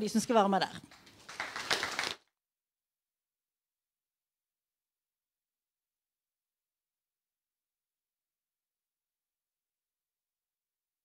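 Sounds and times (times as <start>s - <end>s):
audience applauding: 0.9s - 2.2s.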